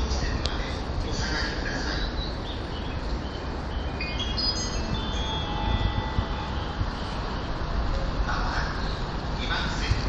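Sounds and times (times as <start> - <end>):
steady low platform rumble: 0.0 - 10.0
electronic station chime: 4.0 - 7.2.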